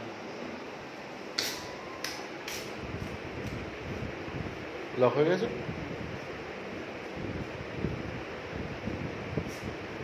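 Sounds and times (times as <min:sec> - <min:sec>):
wind rushing on microphone: 0:02.8 - 0:04.7, 0:05.4 - 0:10.0.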